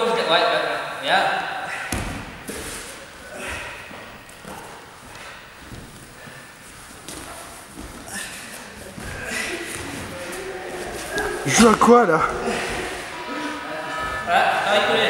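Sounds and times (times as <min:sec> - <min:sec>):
hard breathing: 0:01.6 - 0:11.5, 0:12.2 - 0:14.1
bodies thudding on mat: 0:01.9 - 0:02.9, 0:03.5 - 0:11.4
cotton uniforms rustling: 0:02.2 - 0:13.6.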